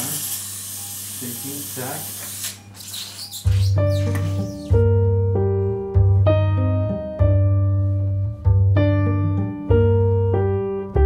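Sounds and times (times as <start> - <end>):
slow piano chords: 3.6 - 11.0.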